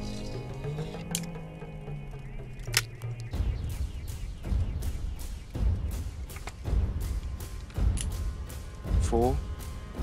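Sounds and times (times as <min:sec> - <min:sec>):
background music with low tones: 0:00.0 - 0:10.0
revolver metallic clicks: 0:02.6 - 0:03.4, 0:07.6 - 0:08.2.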